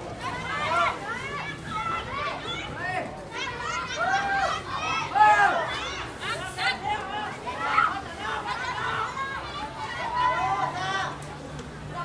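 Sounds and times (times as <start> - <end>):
women shouting: 3.4 - 6.5.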